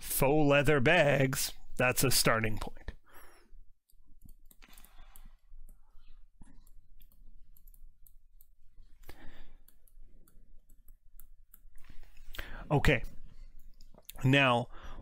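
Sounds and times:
stylus tapping and scratching on screen: 3.7 - 14.4.

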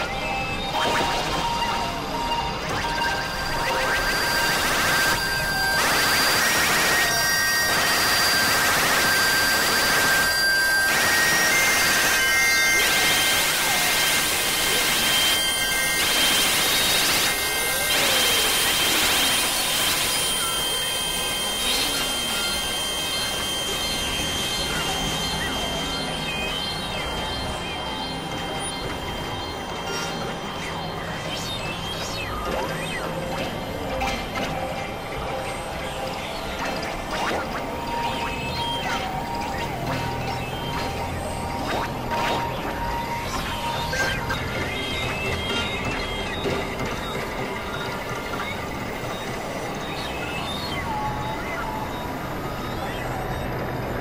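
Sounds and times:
electronic noise music: 0.0 - 54.0.

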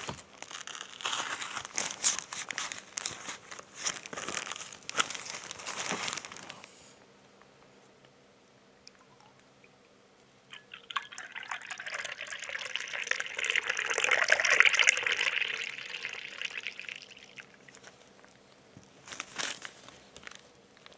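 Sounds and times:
milk pouring into a glass: 10.5 - 18.1.

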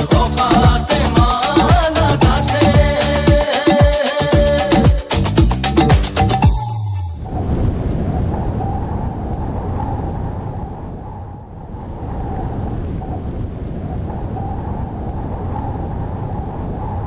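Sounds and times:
low rumbling noise: 6.6 - 17.0.

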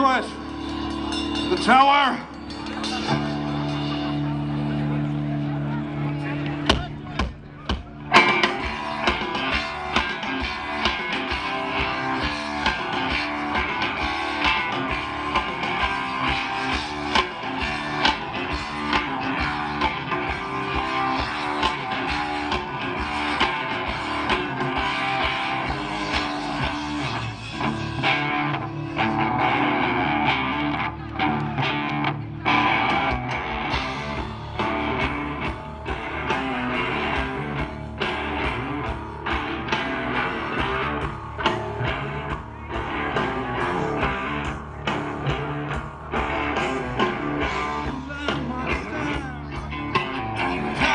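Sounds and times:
live rock band playing: 0.0 - 50.9.

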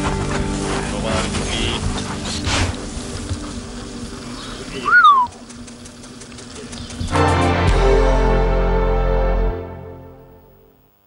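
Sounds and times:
music: 0.0 - 4.2, 7.0 - 10.9
dog whining: 4.6 - 5.4.

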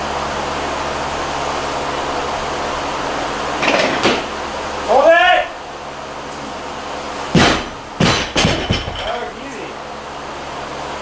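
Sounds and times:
barbell thud on platform: 7.4 - 9.2
barbell bouncing and rattling: 7.4 - 9.3.

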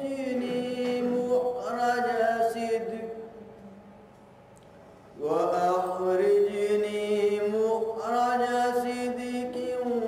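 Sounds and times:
man chanting melodically: 0.0 - 3.8, 5.2 - 10.0.

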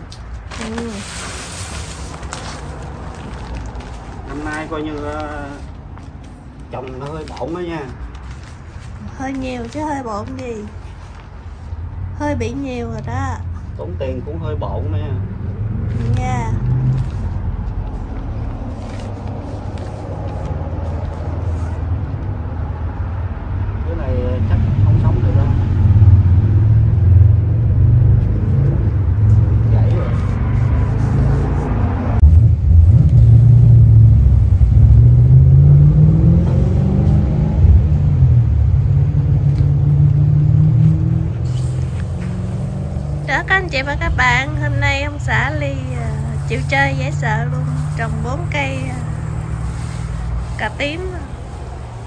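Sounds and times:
loud low engine rumble: 14.7 - 52.0.

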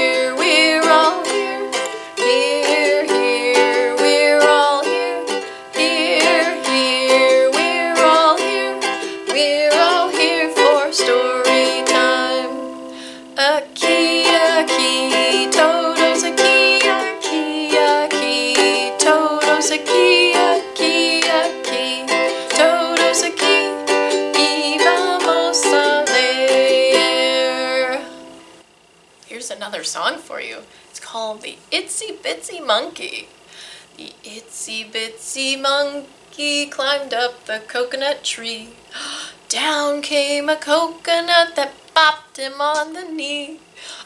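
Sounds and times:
woman singing: 0.0 - 28.4, 34.0 - 38.8, 39.5 - 43.7
ukulele strumming: 0.0 - 28.5.

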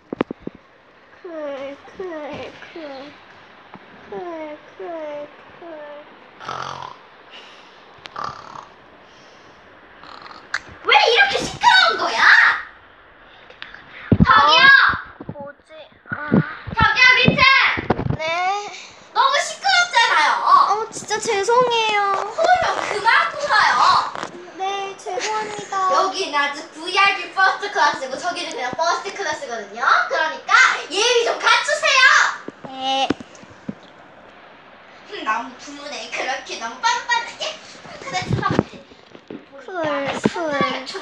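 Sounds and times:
child mock snoring: 4.1 - 7.0, 8.1 - 8.8, 10.0 - 10.7.

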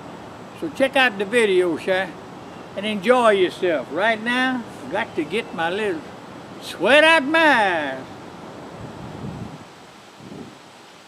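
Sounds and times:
wind noise on microphone: 8.5 - 10.9.

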